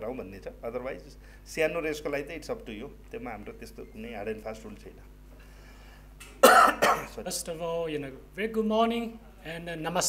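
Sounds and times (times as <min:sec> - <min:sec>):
man coughing: 0:06.4 - 0:07.2.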